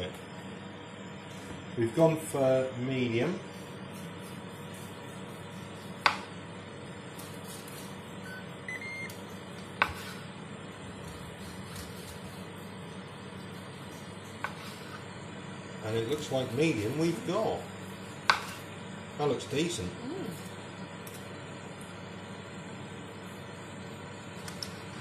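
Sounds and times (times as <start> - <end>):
steady low hum: 0.0 - 25.0
carving knife sawing meat: 3.4 - 6.2, 11.2 - 15.1.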